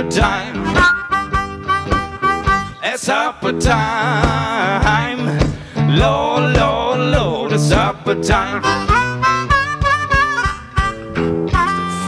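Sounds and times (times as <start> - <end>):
blues harmonica: 0.0 - 6.1, 8.1 - 12.0
acoustic guitar: 0.0 - 12.0
bass: 0.0 - 12.0.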